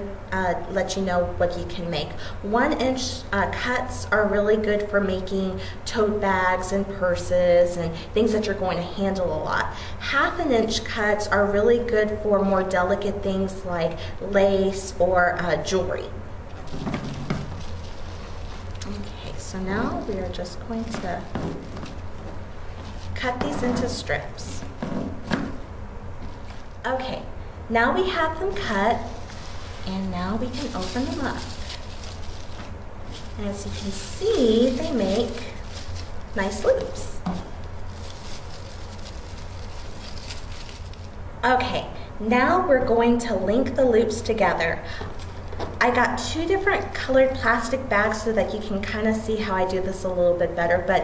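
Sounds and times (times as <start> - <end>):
low electrical hum: 0.0 - 51.0
plastic bags rustling: 16.5 - 26.9, 27.9 - 41.3, 45.1 - 45.8.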